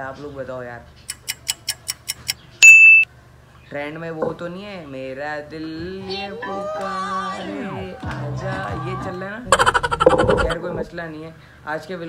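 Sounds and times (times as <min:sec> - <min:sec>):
clock ticking: 0:01.1 - 0:02.4
bright ding: 0:02.6 - 0:03.1.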